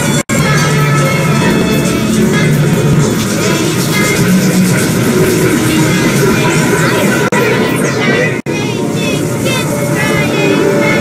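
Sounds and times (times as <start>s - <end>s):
jumble of overlapping music: 0.0s - 11.0s.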